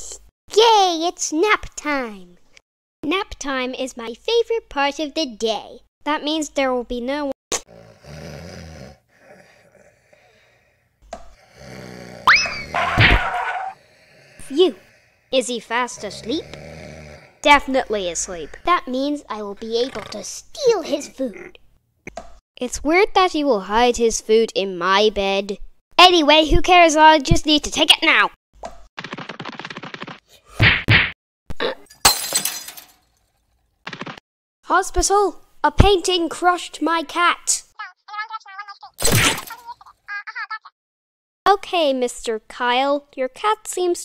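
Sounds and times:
cartoon boing whistle: 0:12.3 - 0:13.5
glass shattering crash: 0:31.9 - 0:33.2.

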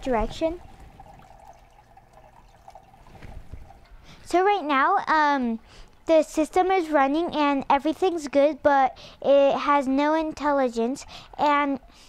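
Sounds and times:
small water drips: 0:00.0 - 0:04.3
water trickling through pipe: 0:00.0 - 0:04.4.

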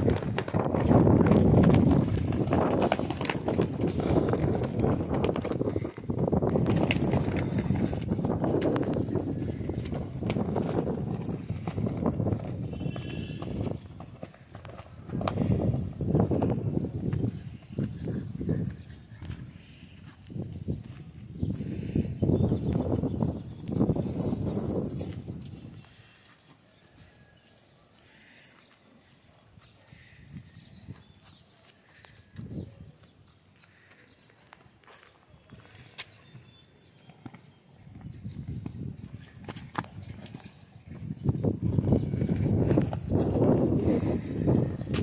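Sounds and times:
dogs scuffling on concrete: 0:00.0 - 0:22.0, 0:22.7 - 0:45.0.

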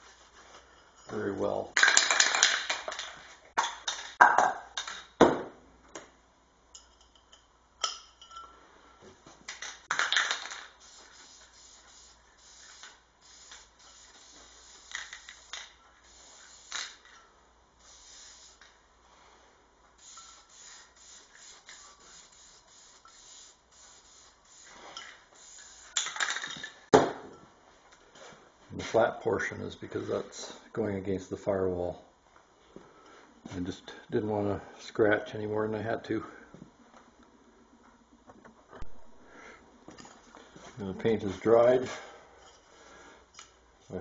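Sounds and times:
clinks and knocks of handling: 0:06.7 - 0:08.6
aerosol can spraying: 0:09.9 - 0:17.1, 0:17.8 - 0:18.8, 0:20.0 - 0:26.4.

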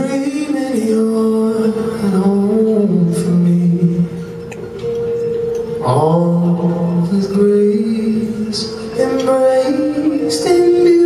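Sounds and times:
man singing long notes: 0:00.0 - 0:04.3, 0:05.8 - 0:11.0
acoustic guitar: 0:00.0 - 0:11.0.

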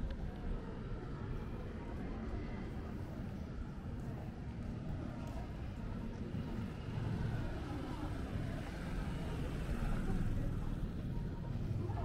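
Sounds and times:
faint voices of passers-by: 0:00.0 - 0:12.0
low rumble of motor traffic: 0:00.0 - 0:12.0.

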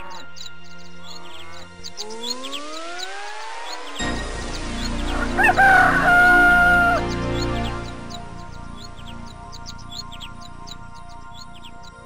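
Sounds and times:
music: 0:00.0 - 0:12.0
rooster crowing: 0:05.1 - 0:07.2.

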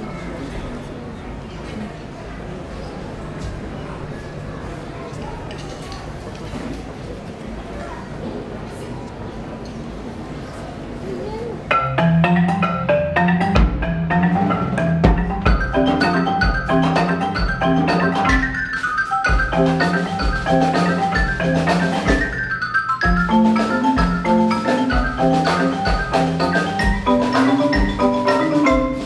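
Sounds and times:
marimbas and xylophones playing: 0:11.7 - 0:29.0.

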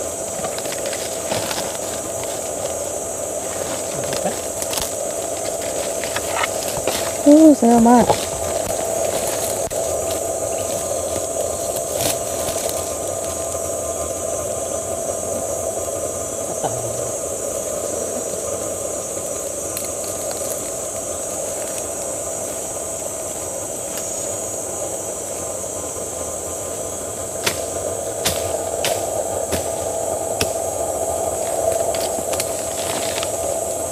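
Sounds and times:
insects droning: 0:00.0 - 0:33.9.

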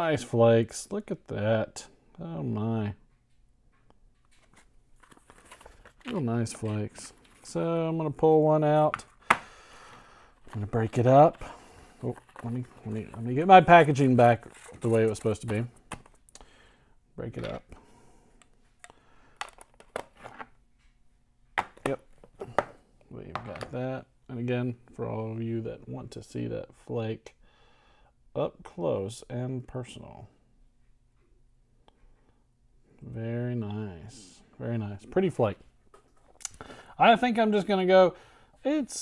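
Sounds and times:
paper wrapper crinkling: 0:04.5 - 0:07.5.

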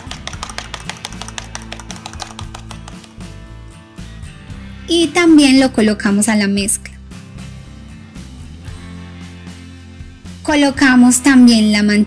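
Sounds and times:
egg beaten in plastic bowl: 0:00.0 - 0:03.1
plucked-string background music: 0:00.0 - 0:12.0.

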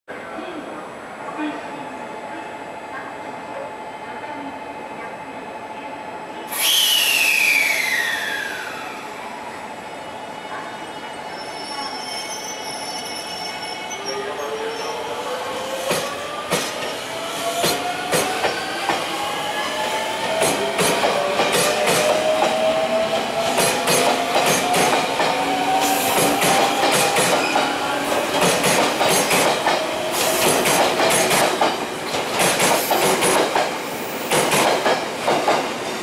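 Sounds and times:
loud air hiss: 0:06.5 - 0:09.1
whistle falling in pitch: 0:06.6 - 0:08.8
train motor whine rising: 0:06.6 - 0:09.1.

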